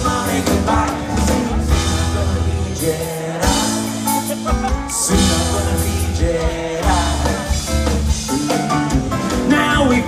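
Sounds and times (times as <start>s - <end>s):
drums: 0.0s - 10.0s
guitar: 0.0s - 10.0s
person singing: 0.0s - 10.0s.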